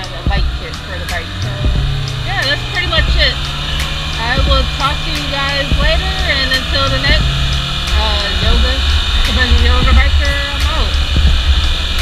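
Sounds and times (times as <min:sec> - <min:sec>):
motorcycle engine running: 0:00.0 - 0:12.0
wind rumble on microphone: 0:00.0 - 0:12.0.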